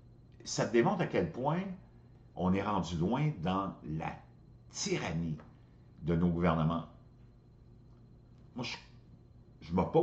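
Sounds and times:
man speaking: 0.4 - 1.8, 2.4 - 7.0, 8.5 - 9.0, 9.6 - 10.0.

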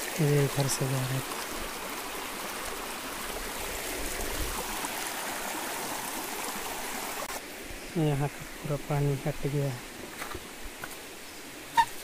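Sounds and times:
stream babbling: 0.0 - 12.0.

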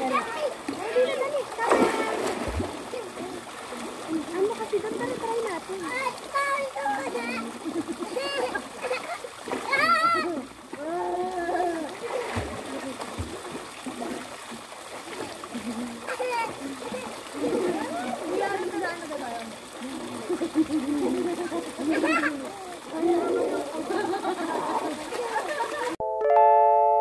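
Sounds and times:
fountain water splashing into pool: 0.0 - 26.0
people calling and talking: 0.0 - 26.0.

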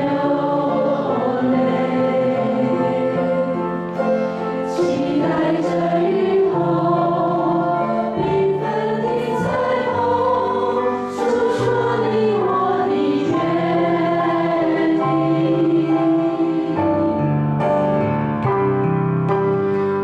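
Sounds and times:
congregation singing a hymn: 0.0 - 17.9.

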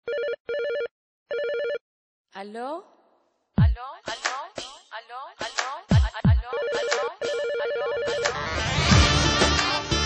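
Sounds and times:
electronic telephone ringing: 0.0 - 1.8, 6.5 - 8.4.

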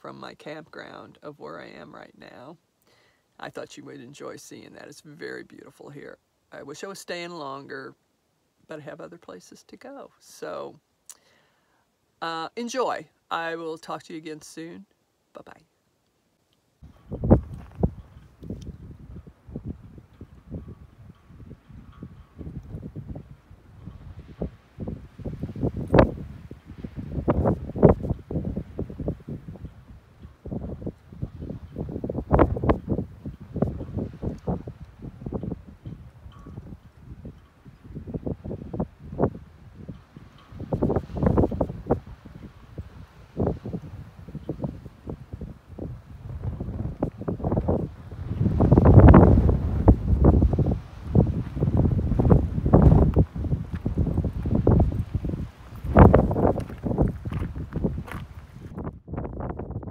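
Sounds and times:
wind buffeting microphone: 16.8 - 59.9.

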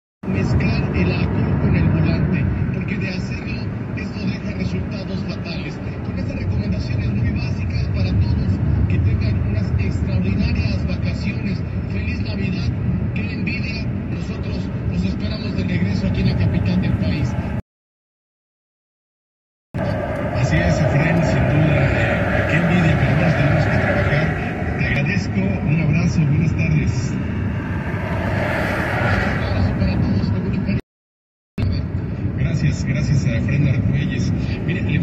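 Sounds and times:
engine and tyres rumbling: 0.2 - 17.6, 19.8 - 30.8
indistinct voice: 19.8 - 30.8.

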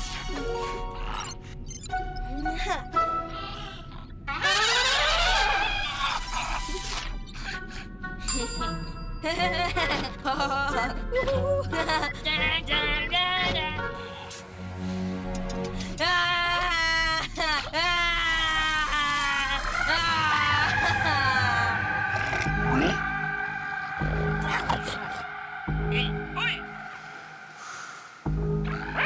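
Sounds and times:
rising swell effect: 21.6 - 28.4.

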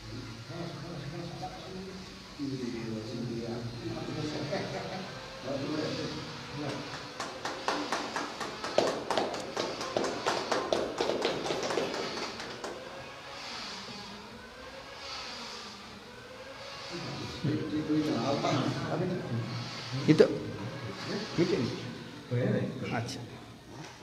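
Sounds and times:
faint voices murmuring: 0.0 - 24.0
people clapping: 6.6 - 13.1.

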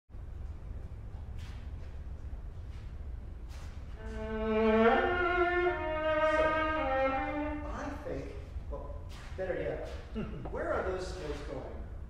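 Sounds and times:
bowed viola: 3.9 - 8.4.

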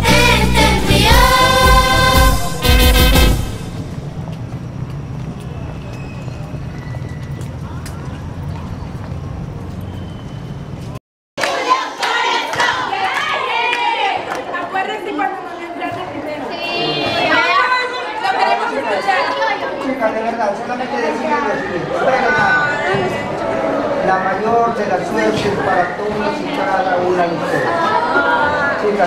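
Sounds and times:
steady low rumble: 1.2 - 4.9
girls chattering: 12.9 - 19.9.

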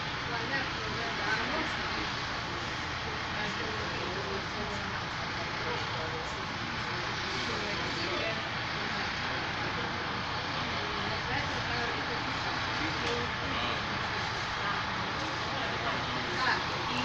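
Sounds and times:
faint indistinct voices talking: 0.0 - 17.0
steady noise: 0.0 - 17.0.

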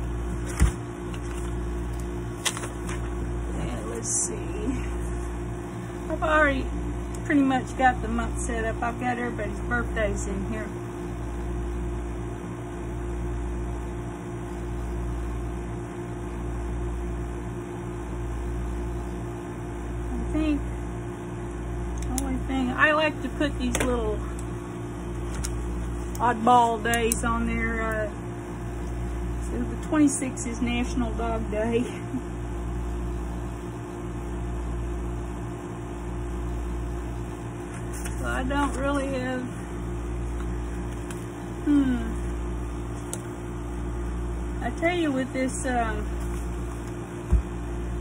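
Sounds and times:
mechanical hum with low throb: 0.0 - 48.0.

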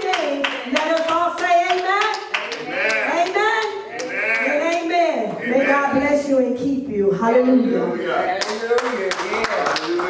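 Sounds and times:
rhythmic hand clapping: 0.0 - 4.9, 8.4 - 10.0
voices singing: 2.6 - 6.3.

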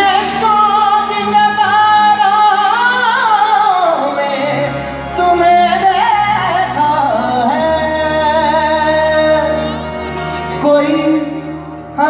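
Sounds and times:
live band accompaniment: 0.0 - 12.0
man singing: 0.0 - 12.0.

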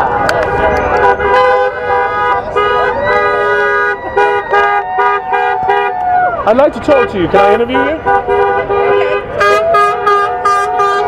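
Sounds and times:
car horns long blasts: 0.0 - 11.0.

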